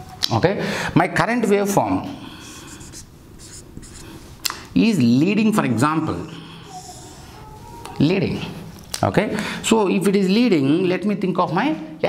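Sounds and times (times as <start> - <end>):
marker scratching on whiteboard: 2.5 - 4.2.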